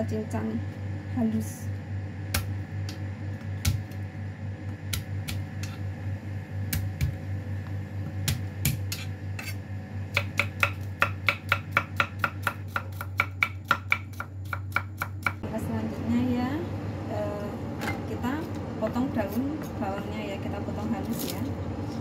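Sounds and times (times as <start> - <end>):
steady low hum: 0.0 - 22.0
knife chopping on cutting board: 8.1 - 15.4.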